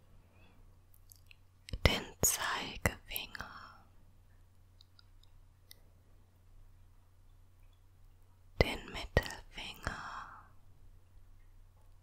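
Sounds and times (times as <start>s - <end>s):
woman whispering: 1.7s - 3.9s, 8.6s - 10.6s.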